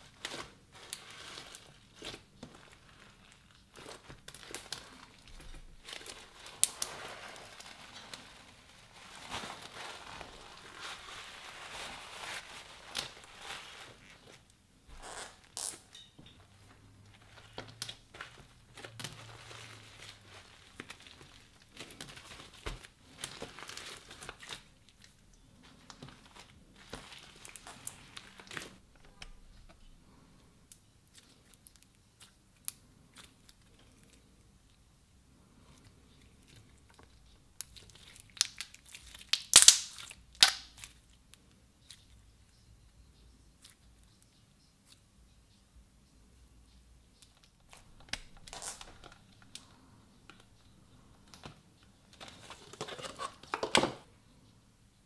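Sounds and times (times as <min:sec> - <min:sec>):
slime crinkling rustles: 0:00.0 - 0:30.2, 0:35.5 - 0:42.2, 0:47.3 - 0:53.7.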